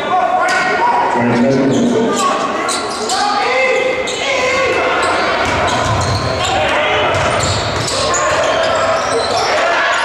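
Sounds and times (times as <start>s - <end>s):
crowd voices: 0.0s - 10.0s
players shouting: 0.0s - 10.0s
basketball bouncing on hardwood floor: 7.1s - 7.9s.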